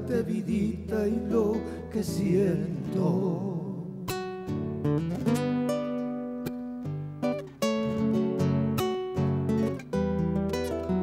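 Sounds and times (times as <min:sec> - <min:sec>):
acoustic guitar plucking: 0:00.0 - 0:11.0.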